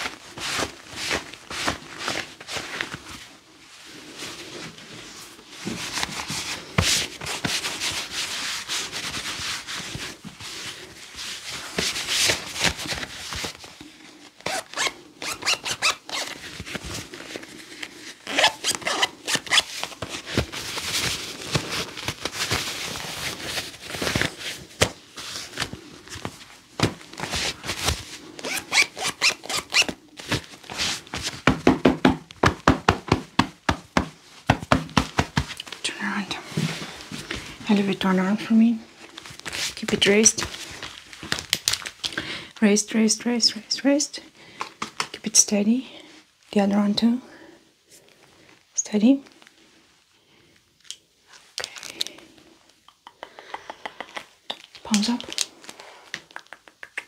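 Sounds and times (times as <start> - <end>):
gloved hands rubbing clothing: 0.0 - 31.6
hands patting clothing: 14.4 - 35.8, 53.0 - 55.4.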